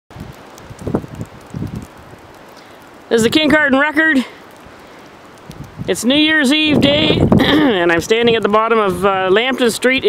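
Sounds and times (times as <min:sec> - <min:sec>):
wind buffeting microphone: 0:00.1 - 0:02.4, 0:04.5 - 0:10.0.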